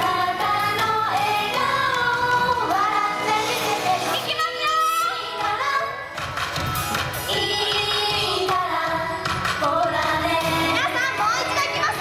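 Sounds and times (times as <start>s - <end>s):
backing track beat: 0.0s - 12.0s
girl group singing pop song: 0.0s - 12.0s.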